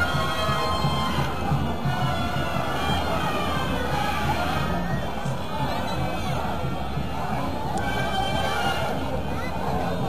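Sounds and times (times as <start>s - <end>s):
carnival street band music: 0.0s - 10.0s
street crowd noise: 0.0s - 10.0s.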